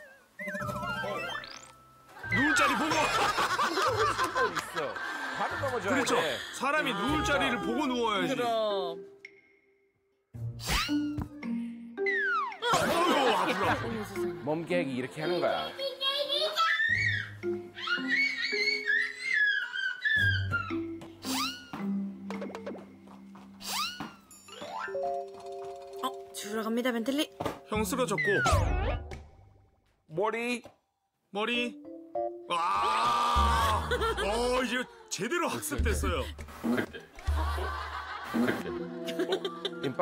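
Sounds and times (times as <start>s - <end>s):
people laughing: 2.2s - 8.0s, 12.6s - 16.7s, 33.2s - 34.8s, 36.2s - 40.0s.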